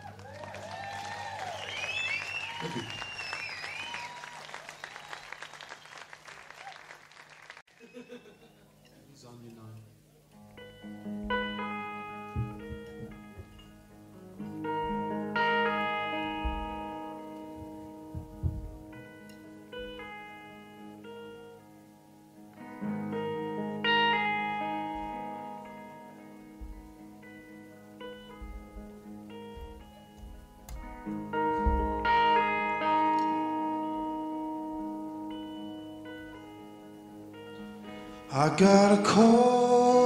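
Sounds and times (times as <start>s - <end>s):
guitar chord ringing: 9.8s - 40.0s.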